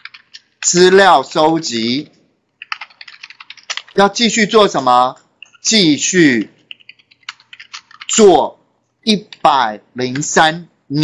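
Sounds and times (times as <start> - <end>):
typing on computer keyboard: 0.0 - 0.8, 2.6 - 4.1, 5.2 - 8.2.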